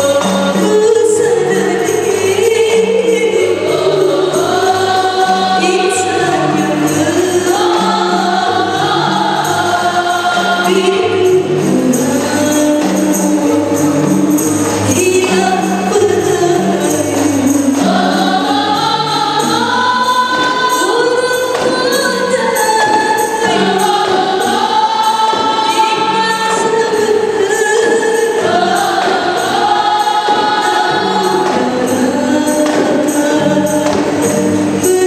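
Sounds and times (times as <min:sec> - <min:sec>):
frame drums: 0:00.0 - 0:35.0
women singing together: 0:00.0 - 0:35.0.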